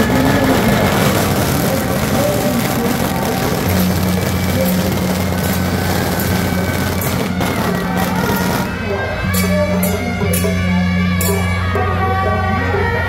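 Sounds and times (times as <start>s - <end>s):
street and crowd noise: 0.0s - 13.0s.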